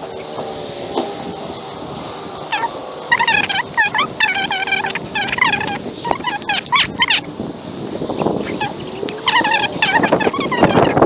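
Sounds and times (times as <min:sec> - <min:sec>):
bird calling loudly: 0:02.5 - 0:07.4, 0:08.0 - 0:11.0.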